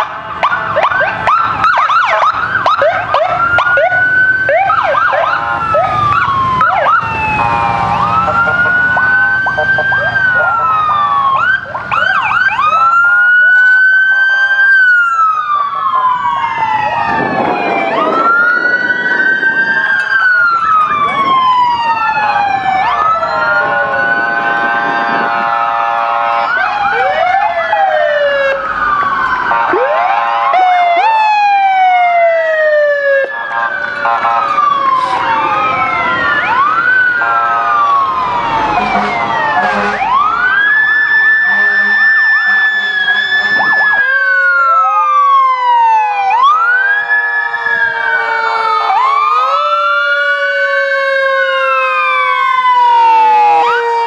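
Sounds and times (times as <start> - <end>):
police sirens wailing and yelping: 0.0 - 54.0
steady horn blasts: 24.1 - 26.7, 29.4 - 30.7, 33.2 - 35.5, 37.2 - 38.0, 38.8 - 40.2, 41.4 - 43.8.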